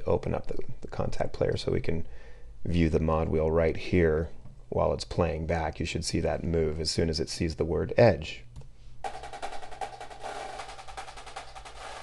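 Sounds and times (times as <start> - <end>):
marching snare drum rudiments: 9.1 - 12.0.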